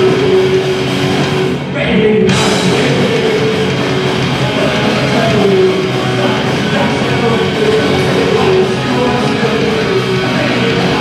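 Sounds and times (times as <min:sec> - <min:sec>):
bass guitar: 0:00.0 - 0:11.0
drums: 0:00.0 - 0:11.0
electric guitars: 0:00.0 - 0:11.0.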